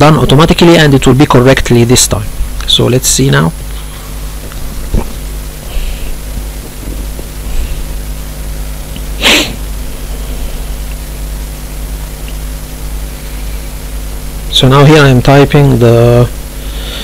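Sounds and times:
low electrical hum and hiss: 0.0 - 17.0
person sniffing: 5.6 - 6.2, 9.2 - 9.6, 16.6 - 17.0.

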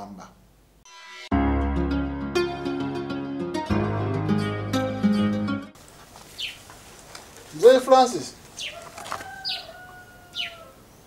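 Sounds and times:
birds chirping: 6.0 - 11.0
faint long held bird call: 8.6 - 11.0.

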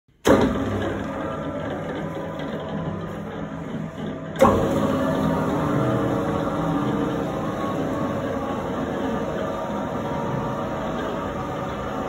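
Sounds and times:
dough mixer motor humming: 0.3 - 12.0.

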